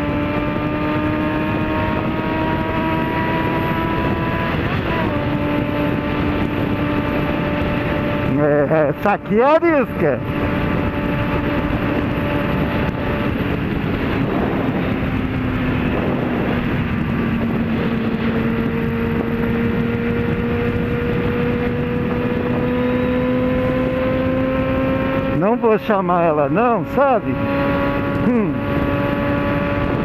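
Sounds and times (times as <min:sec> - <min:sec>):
motorcycle engine cruising: 0:00.0 - 0:30.0
wind rush on microphone: 0:00.0 - 0:30.0.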